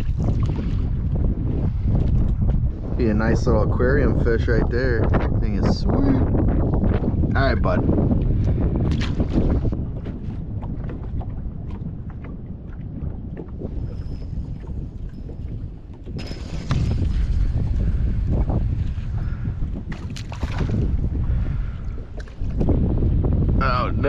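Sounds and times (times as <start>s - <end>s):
water lapping on boat hull: 0.0s - 24.0s
wind buffeting microphone: 0.0s - 24.0s.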